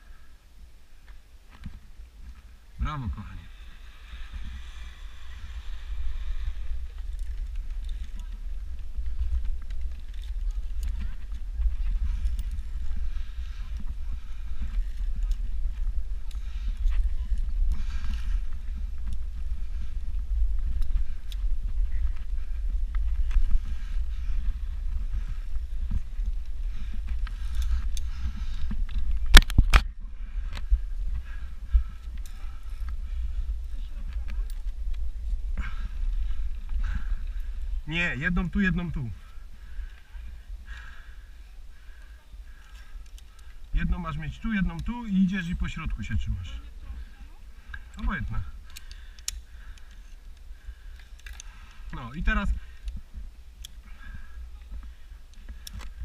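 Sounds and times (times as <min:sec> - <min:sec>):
wind rumble on camera microphone: 0:00.7 - 0:40.7
faint voices: 0:02.2 - 0:56.0
camera handling noise: 0:28.8 - 0:29.9.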